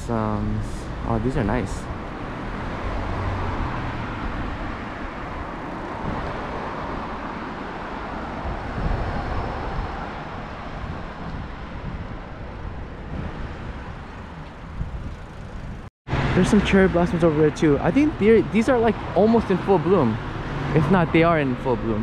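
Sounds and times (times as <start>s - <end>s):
wind buffeting microphone: 0.0s - 21.2s
road traffic: 0.0s - 22.0s.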